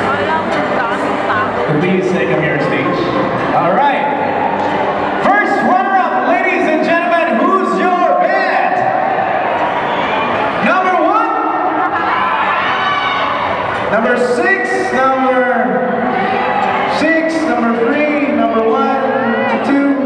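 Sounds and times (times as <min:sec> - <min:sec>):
man talking over loudspeaker: 0:01.3 - 0:04.4, 0:05.2 - 0:09.1, 0:10.6 - 0:11.9, 0:13.9 - 0:16.2, 0:16.8 - 0:20.0.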